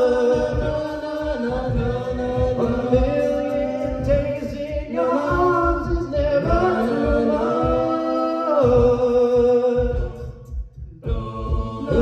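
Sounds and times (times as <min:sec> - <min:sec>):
a cappella group singing harmony: 0:00.0 - 0:12.0
beatboxed beat: 0:00.0 - 0:12.0.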